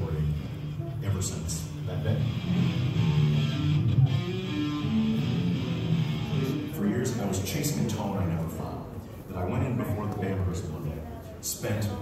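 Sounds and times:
electric guitar over loudspeakers: 0:00.0 - 0:09.0.

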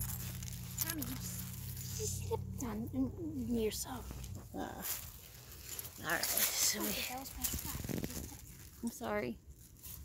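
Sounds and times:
footsteps in dry leaves: 0:00.0 - 0:02.5, 0:03.6 - 0:10.0.

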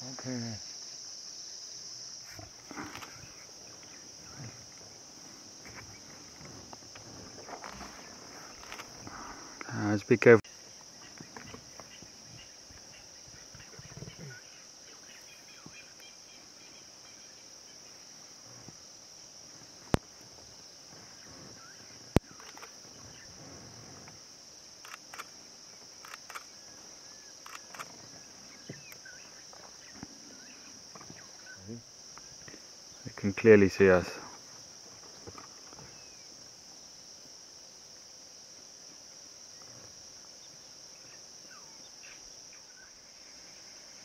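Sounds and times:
crickets chirping: 0:00.0 - 0:44.0
sharp clicks: 0:22.1 - 0:22.8.

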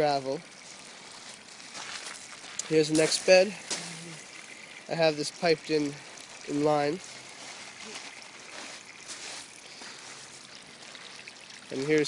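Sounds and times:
water trickling onto gravel: 0:00.0 - 0:12.0.

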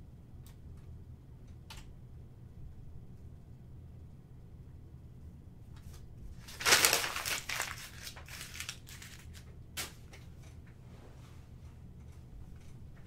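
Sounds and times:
packaging crinkling: 0:06.4 - 0:09.4.

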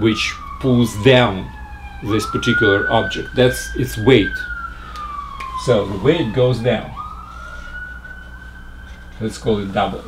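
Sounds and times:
low steady hum: 0:00.0 - 0:10.0
siren wailing: 0:00.0 - 0:10.0.

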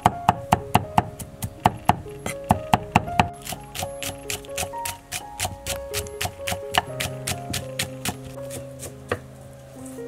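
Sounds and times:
knife chopping on wooden board: 0:01.6 - 0:09.2.

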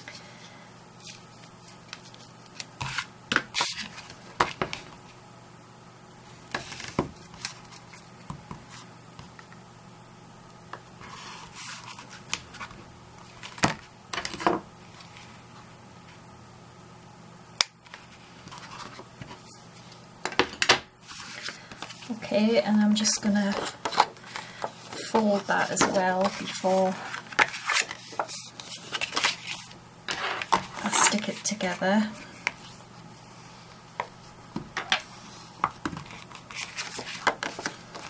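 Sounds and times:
tape and paper rustling: 0:23.4 - 0:31.8, 0:35.9 - 0:38.0.

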